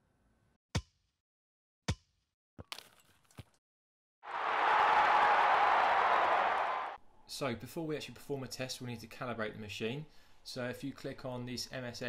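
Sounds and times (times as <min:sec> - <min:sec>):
crowd applause: 0:04.3 - 0:07.0.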